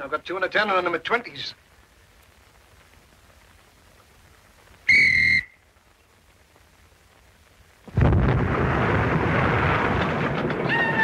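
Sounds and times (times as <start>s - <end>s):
short loud whistle blast: 4.9s - 5.6s.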